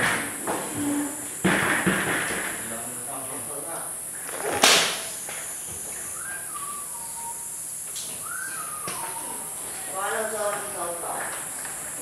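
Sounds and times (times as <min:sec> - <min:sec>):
coilgun firing crack: 0:04.6 - 0:05.1.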